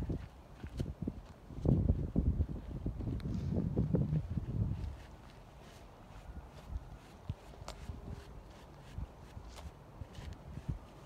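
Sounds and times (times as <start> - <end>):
brush strokes on horse coat: 4.9 - 11.0.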